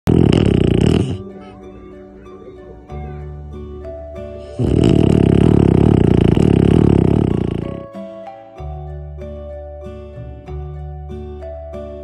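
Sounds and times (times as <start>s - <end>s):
puppy snoring: 0.1s - 1.4s, 4.4s - 7.9s
background music with held notes: 0.1s - 12.0s.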